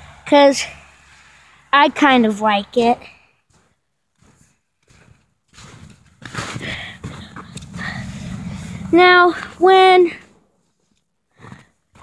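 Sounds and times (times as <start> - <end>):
footsteps crunching in snow: 2.7 - 12.0.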